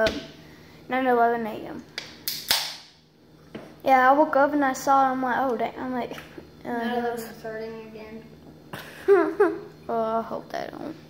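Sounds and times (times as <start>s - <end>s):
sharp crack: 2.0s - 3.0s.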